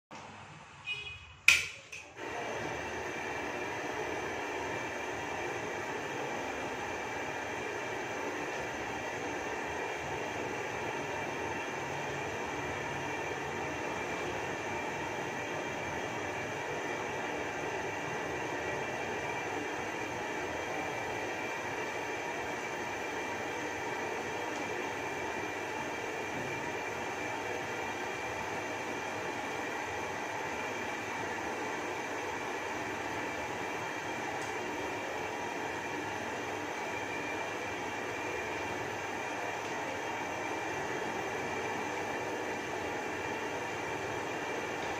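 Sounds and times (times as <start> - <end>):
gas burner roaring: 0.2 - 44.9.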